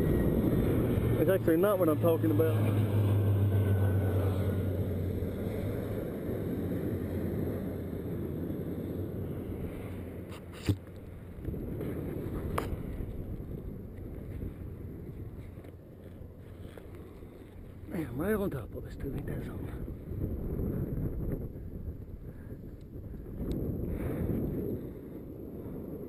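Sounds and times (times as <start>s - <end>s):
low hum: 0.0s - 26.0s
wind buffeting microphone: 0.0s - 26.0s.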